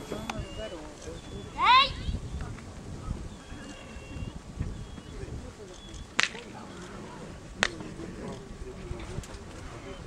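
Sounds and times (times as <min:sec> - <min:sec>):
murmur of voices: 0:00.0 - 0:10.0
sharp stick crack: 0:06.2 - 0:06.4.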